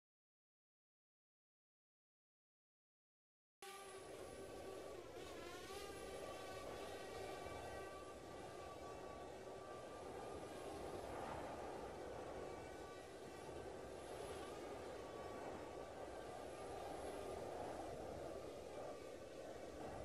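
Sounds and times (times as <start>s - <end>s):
faint mechanical hum: 3.6s - 20.0s
low rushing noise: 3.9s - 20.0s.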